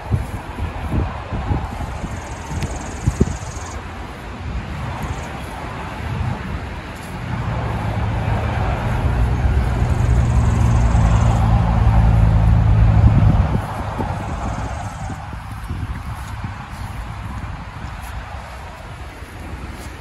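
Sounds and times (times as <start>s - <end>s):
road noise: 0.0s - 20.0s
vehicle engine humming: 0.0s - 20.0s.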